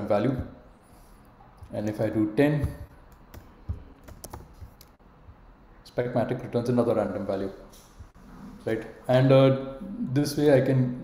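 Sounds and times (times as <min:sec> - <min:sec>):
keyboard keystrokes: 0:02.6 - 0:05.0.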